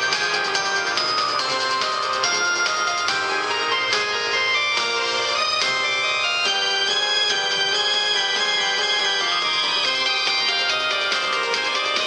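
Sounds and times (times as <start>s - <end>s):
bright held instrumental notes: 0.0s - 12.0s.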